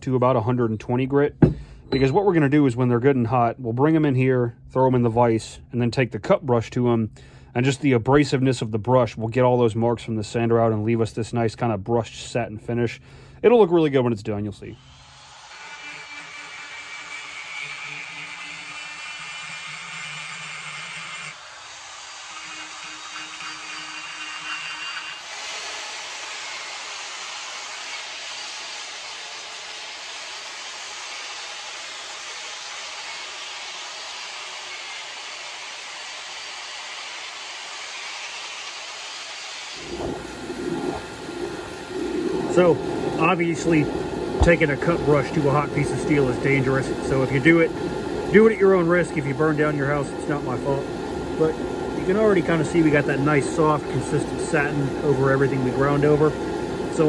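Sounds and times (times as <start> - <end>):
grinder motor hum: 14.7 - 57.0
wire brush scouring metal: 15.6 - 34.0.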